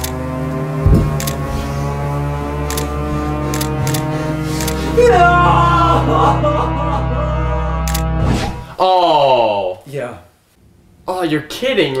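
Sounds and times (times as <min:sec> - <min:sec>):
background music: 0:00.0 - 0:09.2.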